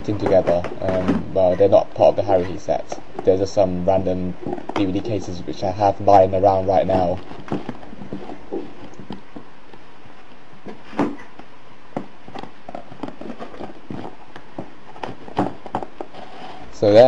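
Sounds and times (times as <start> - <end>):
plastic cases scraping into cardboard box: 12.3 - 16.8.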